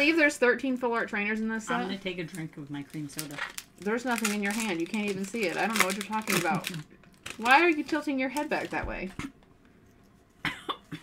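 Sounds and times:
person coughing and spluttering: 10.4 - 11.0.

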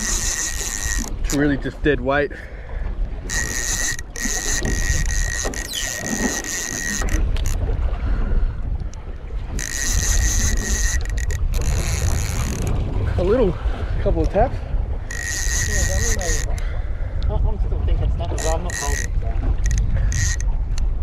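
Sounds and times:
fishing reel whirring: 0.0 - 1.5, 3.2 - 7.6, 9.5 - 13.4, 15.0 - 16.8, 18.3 - 20.8
wind buffeting microphone: 0.0 - 21.0.

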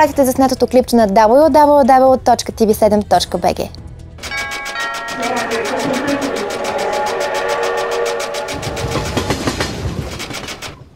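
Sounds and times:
held musical tones: 4.2 - 9.9.

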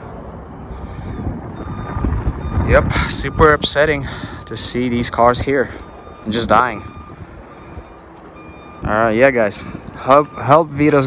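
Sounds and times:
man talking: 2.5 - 6.9, 8.8 - 11.0.

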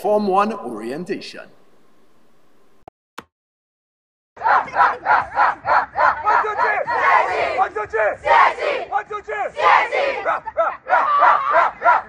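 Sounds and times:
boys chanting rhythmic shouts: 4.4 - 12.0.

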